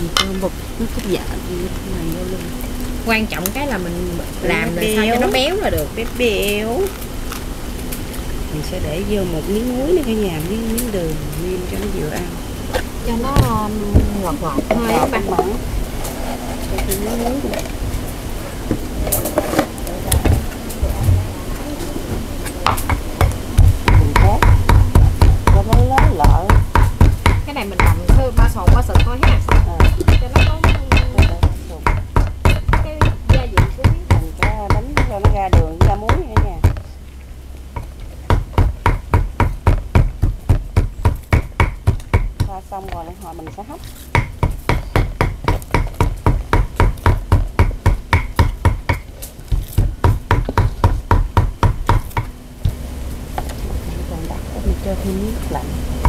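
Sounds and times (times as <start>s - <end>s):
cleaver chopping on wooden board: 22.7s - 36.8s, 38.3s - 42.5s, 44.1s - 52.8s.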